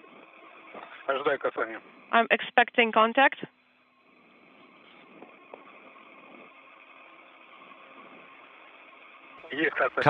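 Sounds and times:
faint radio hiss: 0.0s - 10.0s.

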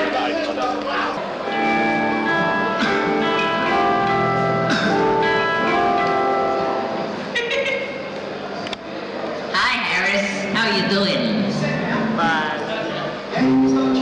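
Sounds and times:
rock band playing: 1.5s - 7.3s.

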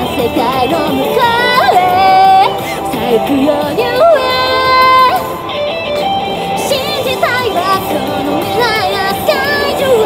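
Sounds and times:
woman singing into microphone: 0.0s - 5.4s, 6.5s - 10.0s
amplified backing music with guitar: 0.0s - 10.0s.

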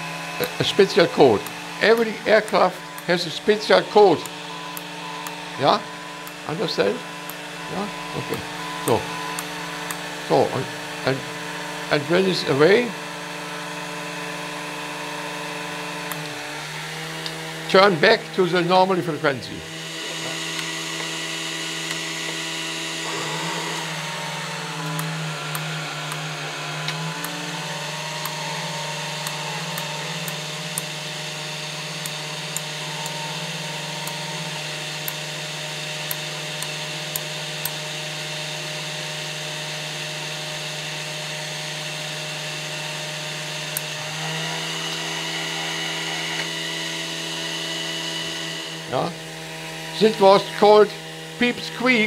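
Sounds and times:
rotary converter motor whine: 0.0s - 52.0s.

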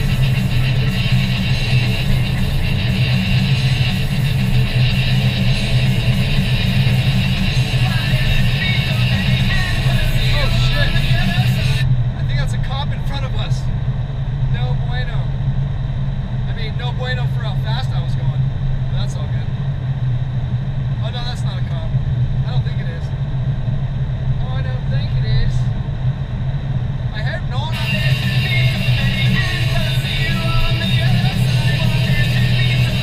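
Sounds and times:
voice on car audio system: 0.0s - 13.8s, 14.4s - 15.4s, 16.5s - 19.6s, 21.0s - 23.2s, 24.4s - 25.8s, 27.1s - 33.0s
car engine and tyres drone: 0.0s - 33.0s.

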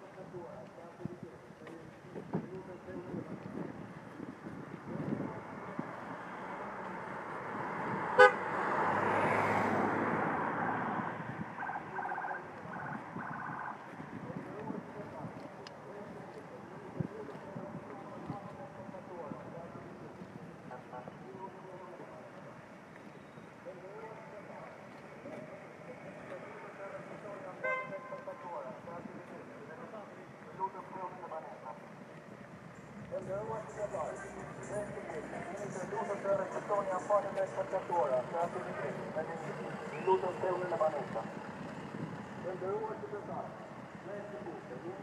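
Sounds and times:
people talking: 0.0s - 3.6s, 14.2s - 22.5s, 23.6s - 31.9s, 33.1s - 41.4s, 42.4s - 45.0s
vehicle passing: 5.1s - 14.3s, 31.7s - 45.0s
short horn honks: 8.2s - 8.5s, 27.6s - 28.1s.

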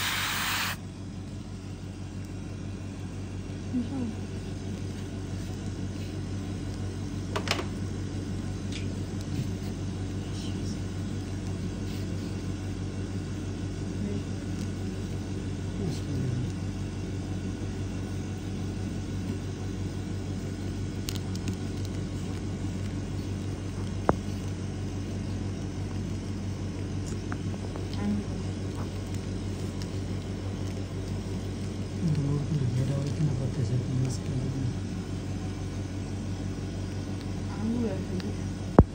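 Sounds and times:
low machine hum: 0.0s - 38.9s.

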